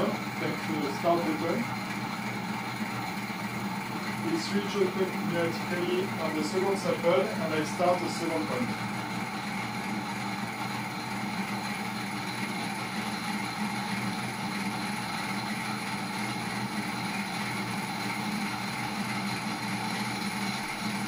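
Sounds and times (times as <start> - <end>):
electric motor whirring: 0.0 - 21.0.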